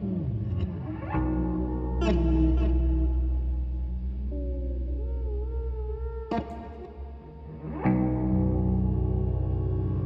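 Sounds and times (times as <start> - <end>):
plucked electric guitar attack: 0.0 - 10.0.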